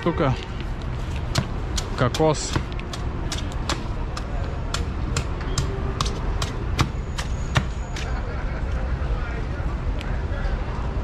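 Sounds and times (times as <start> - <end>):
low traffic rumble: 0.0 - 11.0
knife chopping coconut: 1.3 - 8.1.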